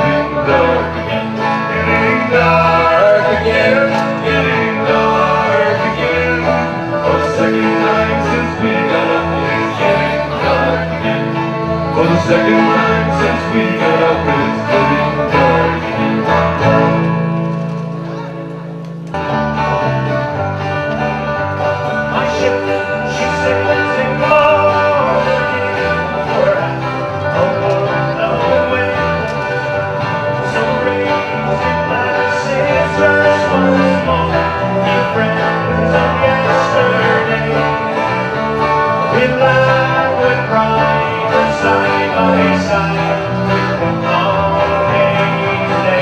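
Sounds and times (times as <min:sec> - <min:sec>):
banjo picking: 0:00.0 - 0:46.0
folk band instrumental: 0:00.0 - 0:46.0.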